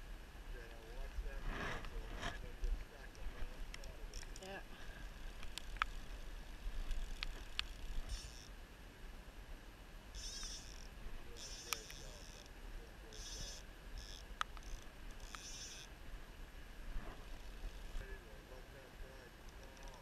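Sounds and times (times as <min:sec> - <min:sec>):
wind and water rumble: 0:00.0 - 0:20.0
fly reel ratchet buzzing: 0:06.8 - 0:08.6, 0:10.1 - 0:12.5, 0:13.1 - 0:15.9
sharp reel clicks: 0:06.9 - 0:08.5, 0:10.2 - 0:12.5, 0:13.1 - 0:15.9.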